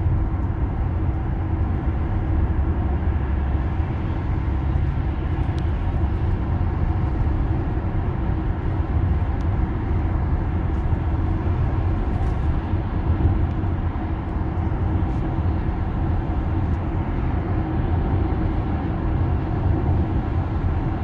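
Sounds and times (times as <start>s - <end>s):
road and tyre noise: 0.0s - 21.0s.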